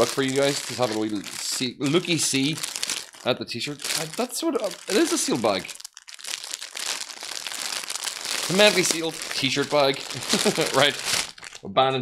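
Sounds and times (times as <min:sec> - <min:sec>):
plastic bag crinkling: 0:00.0 - 0:11.6.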